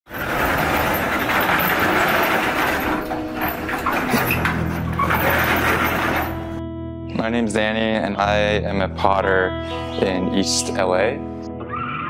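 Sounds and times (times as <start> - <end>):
metal garage door rattling open: 0.1 - 6.6.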